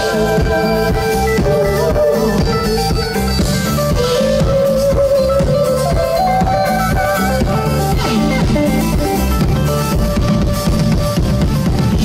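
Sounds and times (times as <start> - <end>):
drum kit beat: 0.0 - 12.0
electric guitar sustained notes: 0.0 - 12.0.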